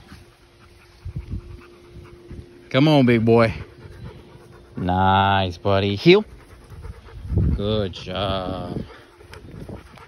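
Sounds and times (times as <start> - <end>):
faint dog sounds: 0.0 - 10.0
faint steady hum: 0.0 - 10.0.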